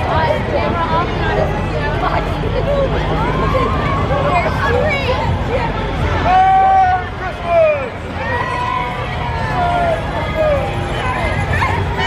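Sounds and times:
indistinct voices nearby: 0.0s - 12.0s.

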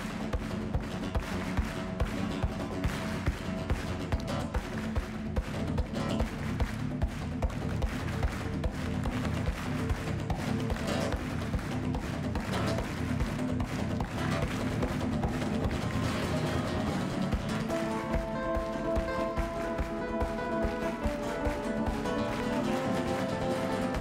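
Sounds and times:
acoustic guitars strumming: 0.0s - 24.0s.

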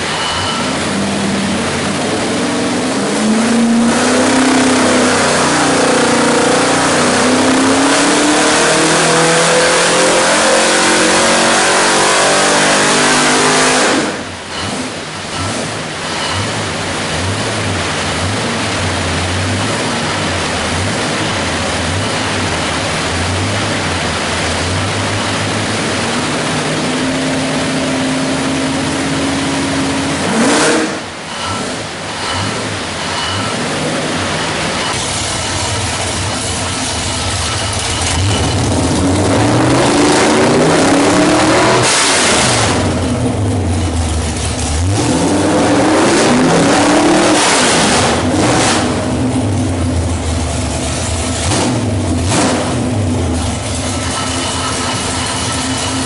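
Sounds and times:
car engine revving on dyno: 0.0s - 56.0s.

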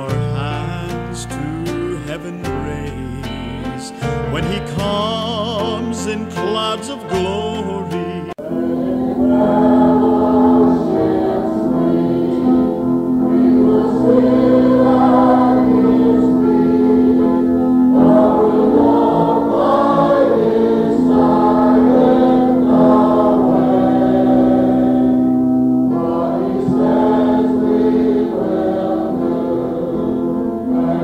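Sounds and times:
sustained accompanying chords: 0.0s - 31.0s
voices singing a gospel hymn: 0.0s - 31.0s.

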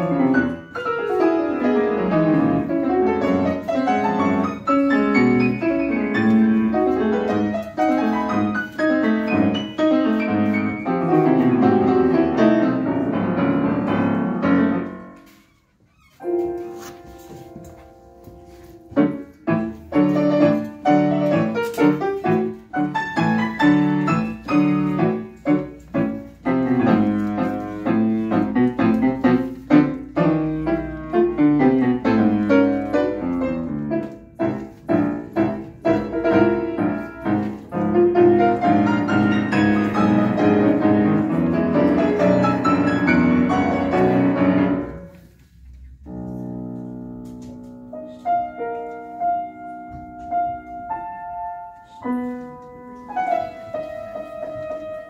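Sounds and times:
solo grand piano: 0.0s - 55.0s.

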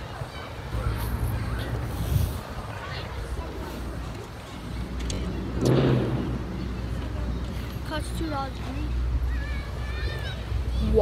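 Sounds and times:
low traffic rumble: 0.0s - 11.0s.

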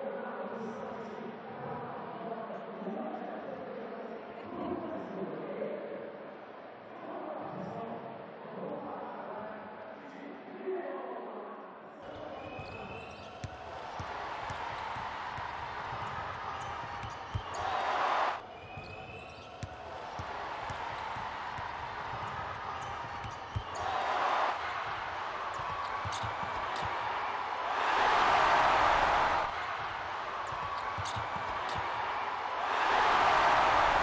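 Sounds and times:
arena crowd murmur: 11.8s - 34.0s.

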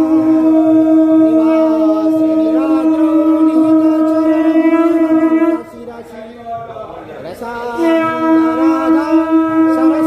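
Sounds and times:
conch shell blown: 0.0s - 5.9s, 7.8s - 10.0s.

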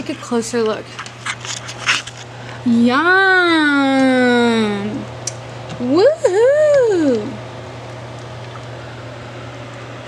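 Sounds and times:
scraping rustling noises: 0.0s - 2.4s
faint electrical hum: 0.0s - 10.0s.

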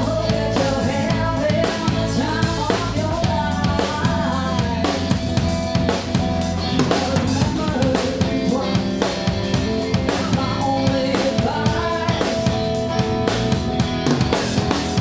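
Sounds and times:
bass drum and snare strokes: 0.0s - 15.0s
live rock band playing: 0.0s - 15.0s.

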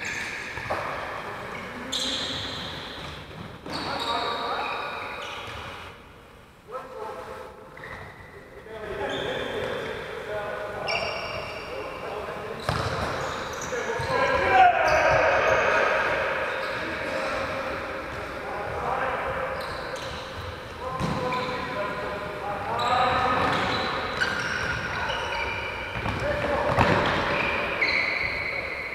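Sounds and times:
shoes squeaking on wooden floor: 0.0s - 5.9s, 19.5s - 21.8s, 22.7s - 28.9s
players shouting in a hall: 14.0s - 17.1s.

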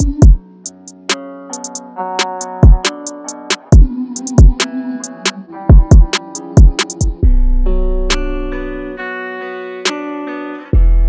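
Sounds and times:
sharp drum hits: 0.0s - 7.2s
rap instrumental beat: 0.0s - 9.0s, 9.8s - 11.0s
deep bass notes: 3.8s - 9.0s.

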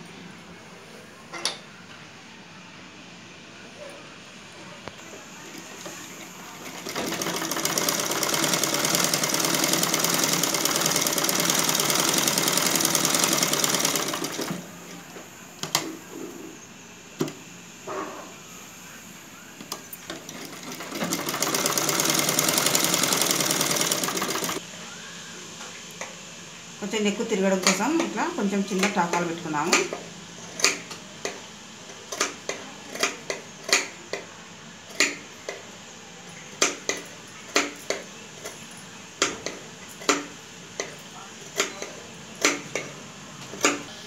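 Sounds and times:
sewing machine rattling: 6.6s - 14.6s, 20.0s - 24.6s.

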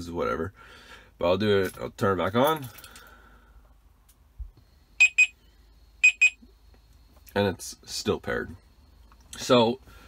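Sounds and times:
high-pitched warning beeps: 5.0s - 6.5s.

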